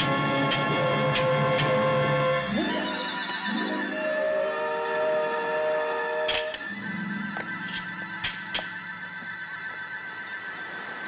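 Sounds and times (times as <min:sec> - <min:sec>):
orchestral score: 0:00.0 - 0:11.0.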